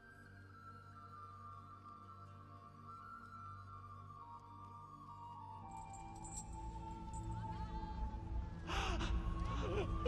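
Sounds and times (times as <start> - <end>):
man gasping and sobbing: 8.6 - 10.0.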